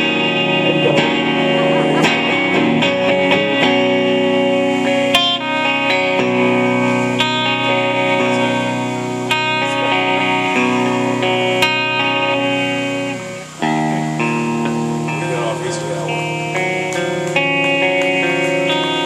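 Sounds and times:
electric guitar ringing chords: 0.0s - 19.0s.

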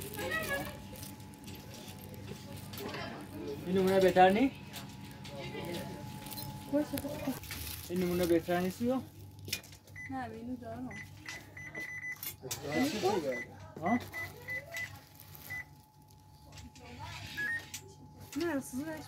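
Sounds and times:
steady low hum: 0.0s - 12.2s.

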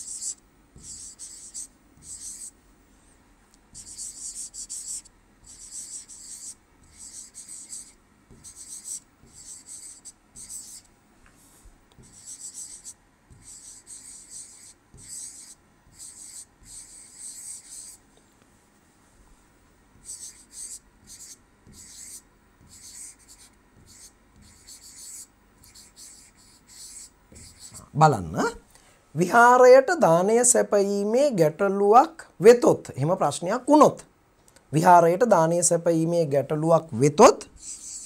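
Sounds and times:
stylus scratching on tablet: 0.0s - 2.6s, 3.7s - 10.9s, 12.0s - 18.0s, 19.9s - 28.0s, 37.6s - 38.0s.

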